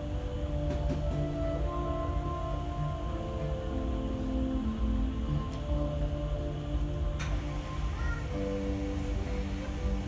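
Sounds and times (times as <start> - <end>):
slow background music: 0.0 - 10.0.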